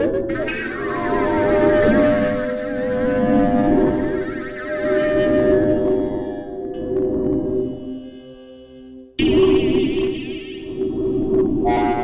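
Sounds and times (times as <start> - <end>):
wavering high tone: 0.3 - 6.8
synthesizer chords: 0.3 - 7.0, 9.2 - 12.0.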